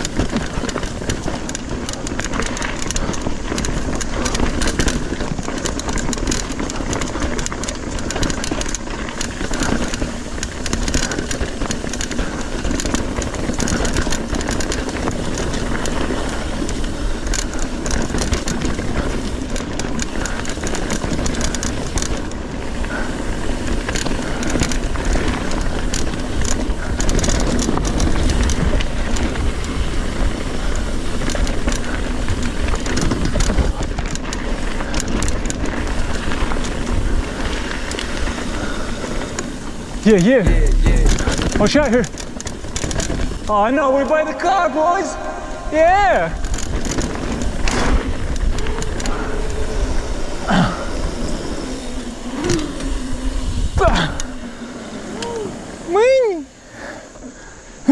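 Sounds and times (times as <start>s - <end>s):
tyres on rock and dirt: 0.0s - 56.5s
bike clattering and rattling: 0.0s - 57.9s
wind rumble on microphone: 0.0s - 57.9s.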